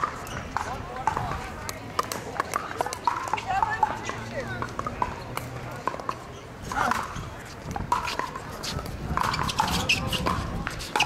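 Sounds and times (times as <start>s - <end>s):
paddles hitting balls: 0.0s - 11.0s
people talking: 0.0s - 11.0s.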